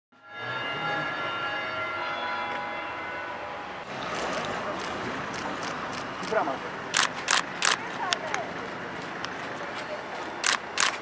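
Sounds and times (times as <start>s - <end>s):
street noise: 0.2s - 11.0s.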